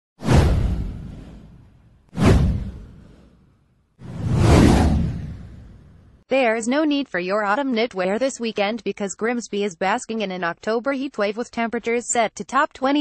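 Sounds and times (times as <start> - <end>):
whoosh sound effects: 0.2 - 6.1.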